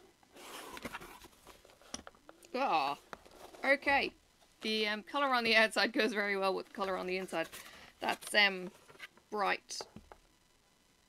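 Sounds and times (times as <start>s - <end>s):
cardboard scraping rustle: 0.3s - 1.9s, 3.2s - 3.8s.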